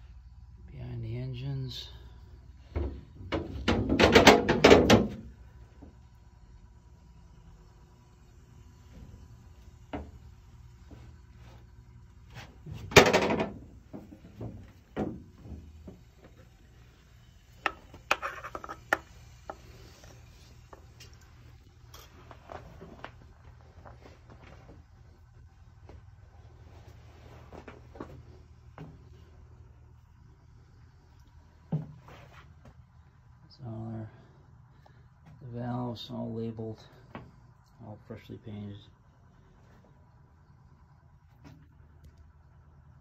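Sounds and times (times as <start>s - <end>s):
low steady hum: 0.0s - 43.0s
knocking and scraping on metal: 2.7s - 5.2s, 12.7s - 16.0s, 17.6s - 19.7s.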